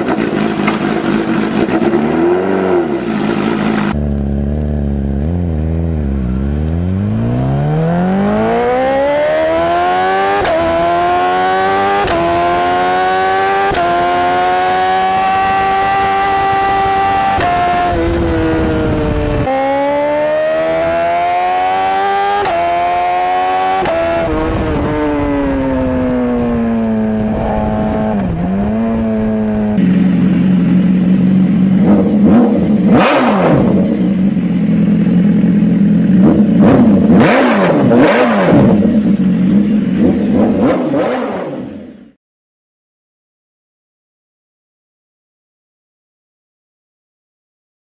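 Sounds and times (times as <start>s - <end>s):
motorcycle engine revving: 0.0s - 42.2s.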